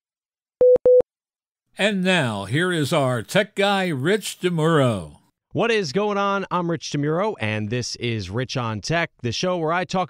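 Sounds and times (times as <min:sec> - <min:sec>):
man speaking: 0:01.8 - 0:06.1.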